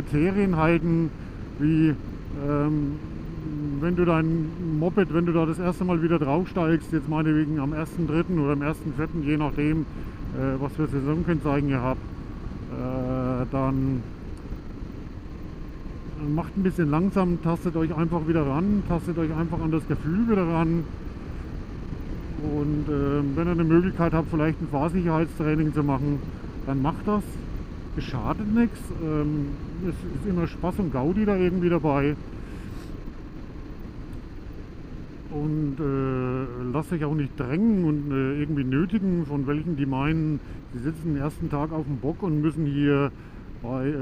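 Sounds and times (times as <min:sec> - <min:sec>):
motorcycle low rumble: 0:00.0 - 0:44.0.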